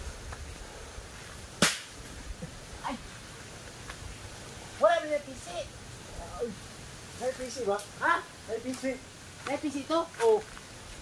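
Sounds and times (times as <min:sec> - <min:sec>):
sharp crack: 0:01.5 - 0:02.1.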